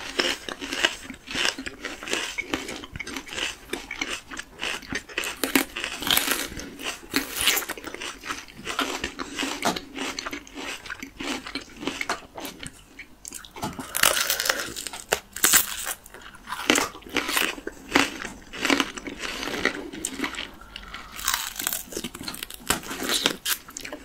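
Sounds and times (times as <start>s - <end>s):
plums crunching when bitten: 0.0s - 12.7s, 13.3s - 24.0s
chewing: 0.0s - 24.0s.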